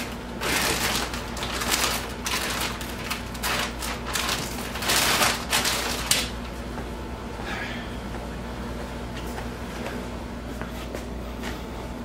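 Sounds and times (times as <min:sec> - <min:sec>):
plastic sheeting crinkling: 0:00.0 - 0:06.5.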